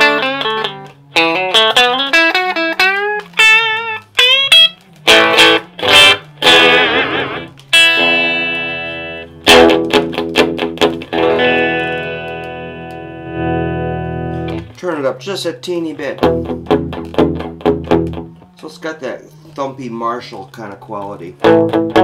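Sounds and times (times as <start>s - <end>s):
electric guitar chords and notes: 0.0s - 19.6s, 21.0s - 22.0s.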